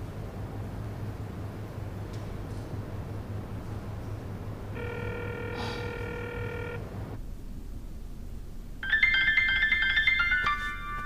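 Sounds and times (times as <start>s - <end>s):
low steady hum: 0.0s - 11.0s
phone ringing tone: 4.7s - 6.8s
phone ringtone melody: 4.8s - 6.8s, 8.8s - 11.0s.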